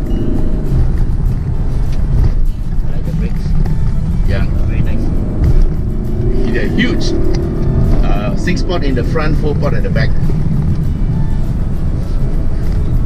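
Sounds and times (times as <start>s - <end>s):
car engine under load: 0.0s - 13.0s
road noise: 0.0s - 13.0s.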